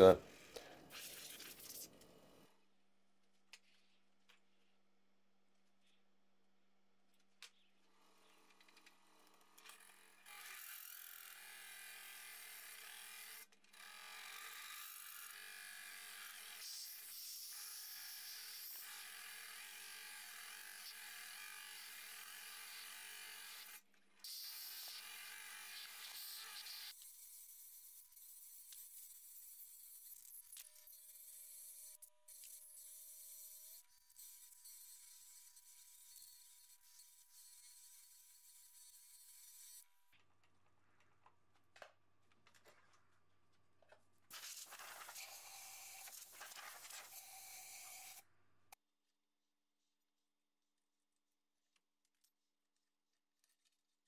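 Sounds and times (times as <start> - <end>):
tool cutting hiss: 20.0 - 39.8, 44.3 - 48.2.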